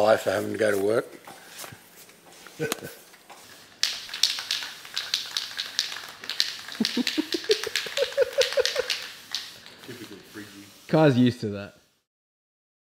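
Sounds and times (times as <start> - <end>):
man laughing: 2.6 - 3.0, 6.8 - 9.0.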